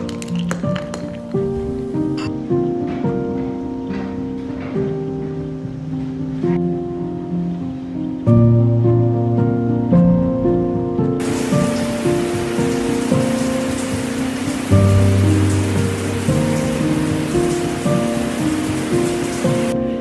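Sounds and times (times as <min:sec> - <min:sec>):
background music: 0:00.0 - 0:20.0
falling water hissing: 0:11.2 - 0:19.8.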